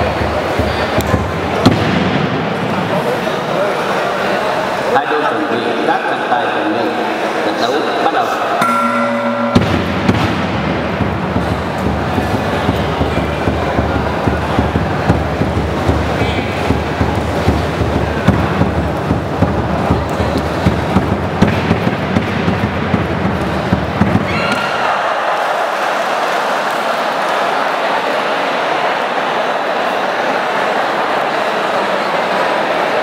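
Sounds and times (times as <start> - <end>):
rapid drum beats: 0.0 - 3.0, 8.6 - 24.4
crowd roar: 0.0 - 33.0.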